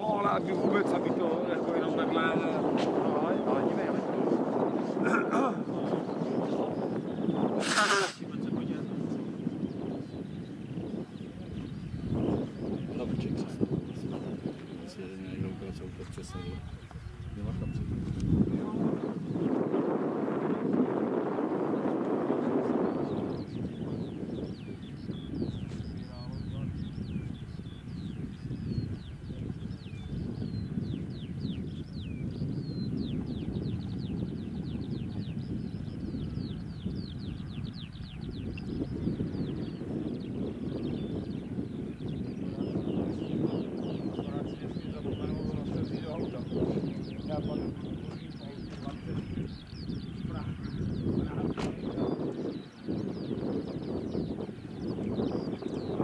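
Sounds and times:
faint indistinct voices: 0.0s - 19.8s, 25.1s - 30.8s, 38.8s - 55.6s
wind noise on microphone: 0.0s - 56.0s
bird chirping high and thin: 5.6s - 8.3s, 23.5s - 44.4s.

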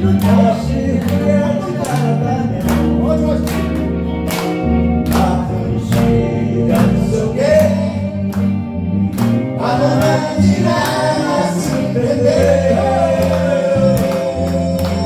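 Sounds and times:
man singing: 0.0s - 3.5s, 5.0s - 8.3s, 9.6s - 15.0s
electric bass: 0.0s - 15.0s
electric guitar: 0.0s - 15.0s.

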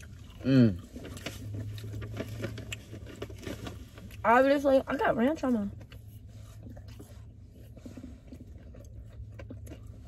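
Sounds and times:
chewing chicken close up: 0.0s - 4.2s, 5.9s - 10.0s
low steady hum: 0.0s - 10.0s.

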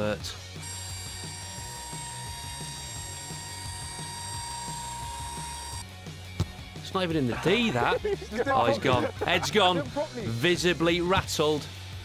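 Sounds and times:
background music: 0.0s - 12.0s
mechanical whirr with whine: 0.6s - 5.8s.

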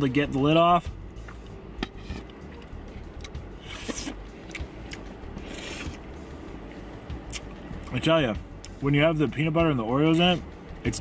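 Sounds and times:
low steady hum: 0.0s - 11.0s
straw scraping through milkshake: 5.4s - 6.0s.

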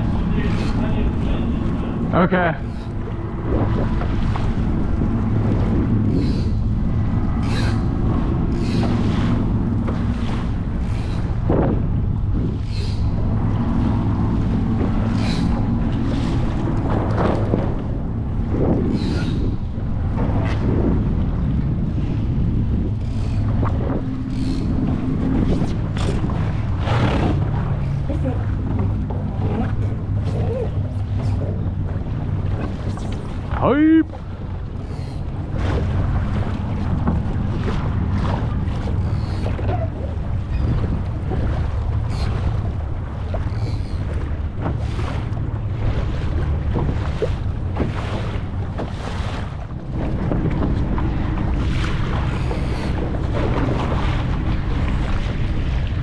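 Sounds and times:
water slapping against hull: 0.0s - 56.0s
wind rumbling on microphone: 0.0s - 56.0s.

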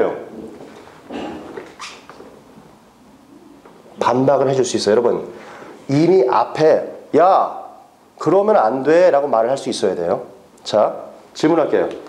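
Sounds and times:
man speaking: 0.0s - 0.4s, 4.0s - 12.0s.

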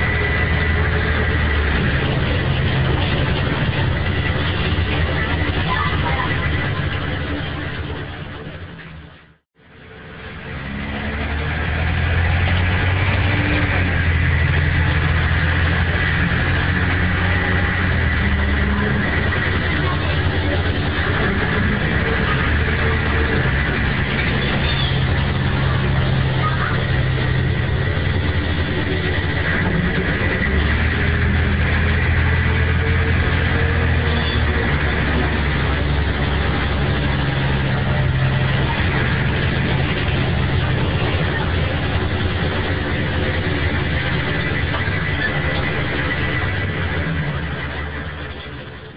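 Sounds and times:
diesel bus engine running: 0.0s - 48.9s
road and body noise: 0.0s - 48.9s.

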